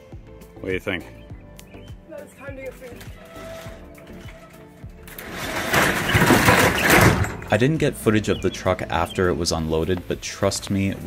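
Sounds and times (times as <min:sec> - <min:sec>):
roll-up cargo door rumbling: 0:03.2 - 0:09.9.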